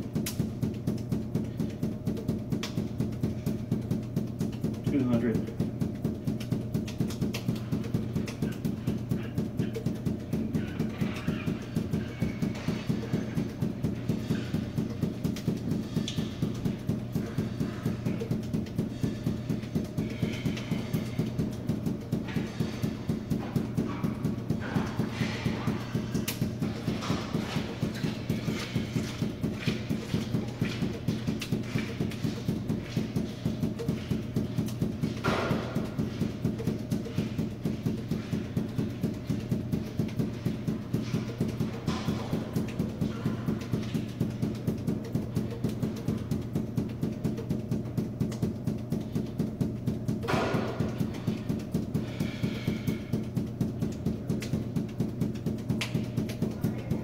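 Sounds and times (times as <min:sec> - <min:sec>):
balls bouncing off hard floor: 0:00.0 - 0:57.0.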